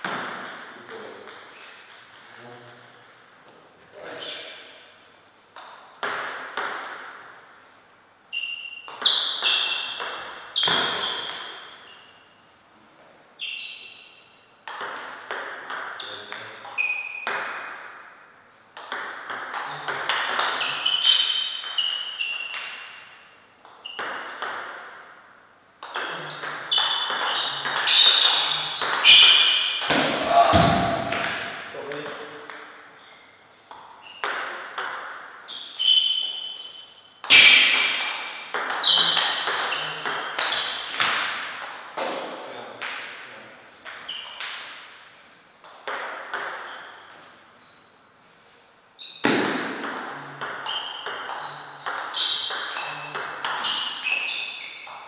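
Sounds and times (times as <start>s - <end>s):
table tennis ball hits: 0.0s - 3.4s, 5.5s - 7.4s, 8.6s - 11.9s, 14.6s - 33.0s, 33.7s - 36.6s, 37.2s - 47.3s, 49.2s - 55.0s.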